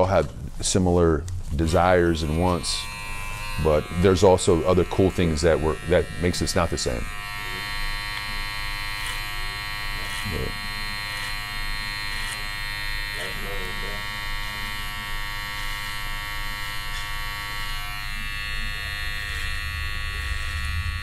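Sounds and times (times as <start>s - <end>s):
electric hair clipper buzzing: 1.5s - 21.0s.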